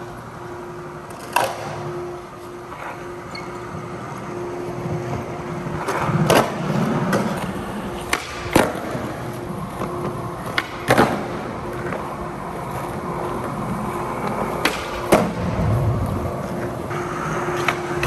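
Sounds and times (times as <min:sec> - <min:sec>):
skateboard wheels rolling on stone: 0:01.1 - 0:18.0.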